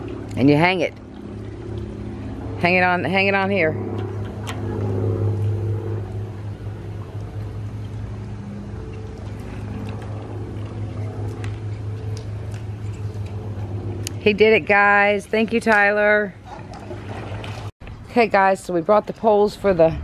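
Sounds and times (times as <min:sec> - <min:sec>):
pool pump motor humming: 0:00.0 - 0:17.7.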